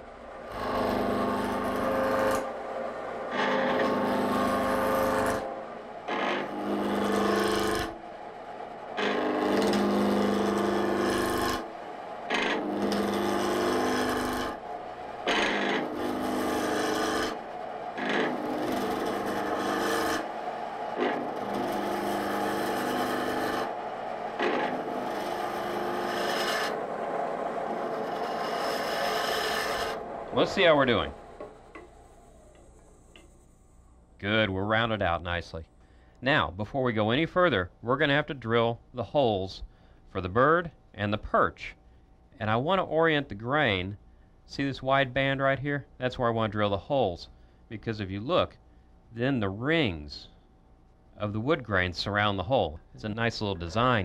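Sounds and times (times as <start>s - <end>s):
gouge cutting wood on lathe: 0.4s - 8.0s, 8.9s - 33.3s.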